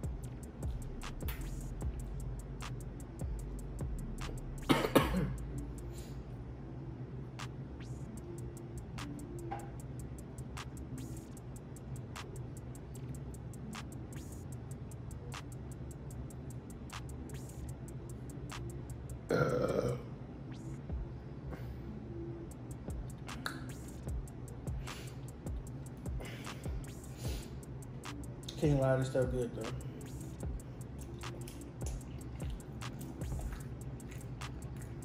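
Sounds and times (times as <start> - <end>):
quiet background music: 0.0 - 35.0
loud burp: 19.3 - 20.1
wet chewing with mouth clicks: 31.0 - 35.0.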